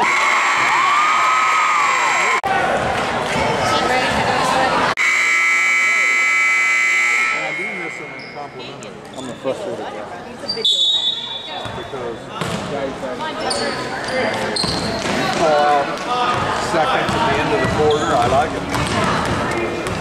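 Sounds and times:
crowd chatter: 0:00.0 - 0:20.0
scoreboard horn: 0:05.0 - 0:08.2
referee's whistle: 0:05.0 - 0:08.6, 0:10.6 - 0:11.6.

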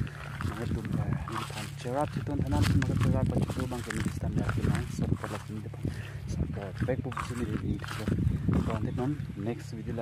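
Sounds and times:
steady low hum: 0:00.0 - 0:10.0
man talking: 0:00.4 - 0:10.0.

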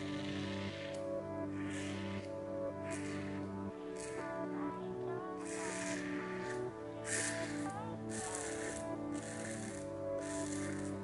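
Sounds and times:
soft background music: 0:00.0 - 0:11.0
razor scraping stubble: 0:05.4 - 0:10.9.

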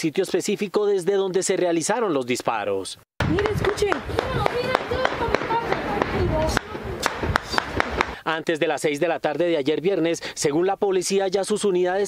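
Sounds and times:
rapid rifle shots: 0:03.6 - 0:08.2.

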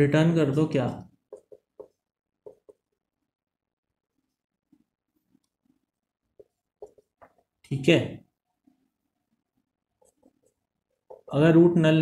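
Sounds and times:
marker pen writing on whiteboard: 0:00.6 - 0:11.6.

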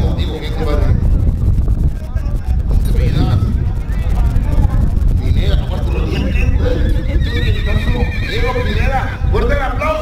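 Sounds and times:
quavering horse-like whinny: 0:06.6 - 0:09.2.

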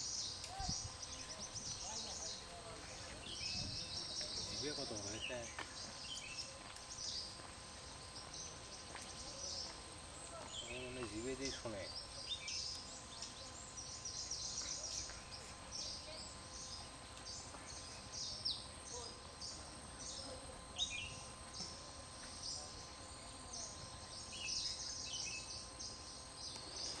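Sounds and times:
low background hiss: 0:00.0 - 0:27.0
small birds chirping: 0:00.0 - 0:27.0.

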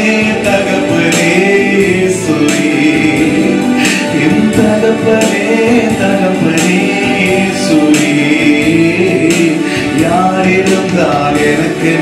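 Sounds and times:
man singing into microphone: 0:00.0 - 0:12.0
musical accompaniment: 0:00.0 - 0:12.0.

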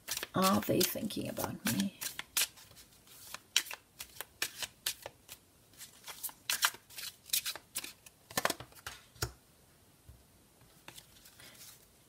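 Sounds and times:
cards being shuffled by hand: 0:00.0 - 0:09.0, 0:10.8 - 0:11.9.

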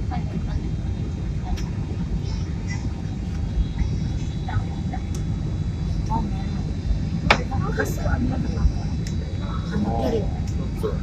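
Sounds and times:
airplane engine rumble in cabin: 0:00.0 - 0:11.0
thin steady whine: 0:00.0 - 0:11.0.

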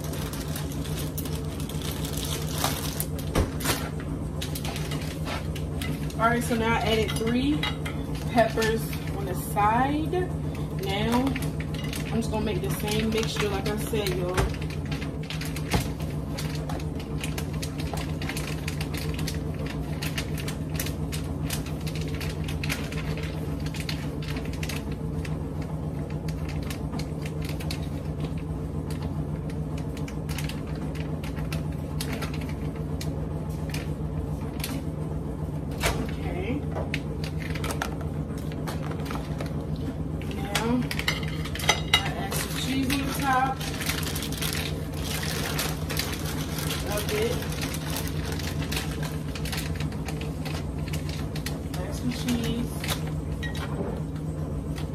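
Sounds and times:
steady low hum: 0:00.0 - 0:54.9.

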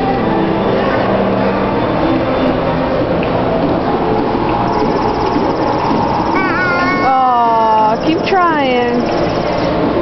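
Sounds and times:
busy indoor crowd din: 0:00.0 - 0:10.0.

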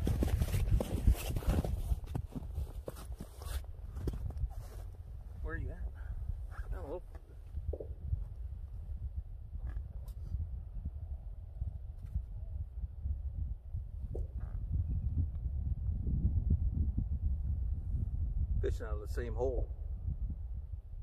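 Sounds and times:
footsteps crunching in snow: 0:00.0 - 0:05.0
wind buffeting microphone: 0:00.0 - 0:21.0.

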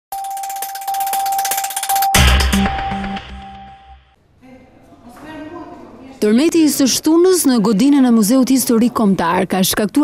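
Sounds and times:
bell-like held tone: 0:00.1 - 0:04.1
rapid glittering ticks: 0:00.2 - 0:02.2.

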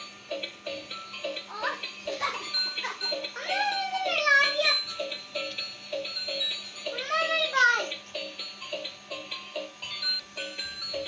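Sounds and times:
toy playing electronic tune: 0:00.0 - 0:11.0.

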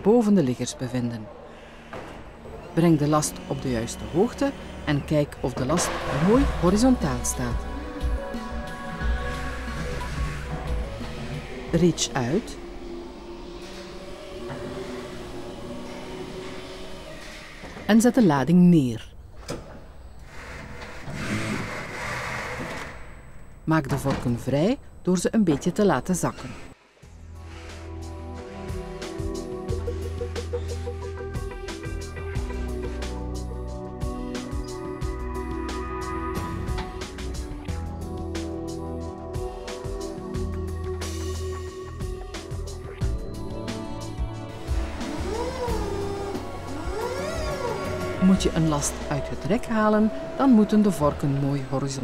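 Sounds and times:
background music: 0:00.0 - 0:19.1, 0:24.2 - 0:52.0
electric motor whining: 0:03.0 - 0:17.9, 0:44.2 - 0:52.0.

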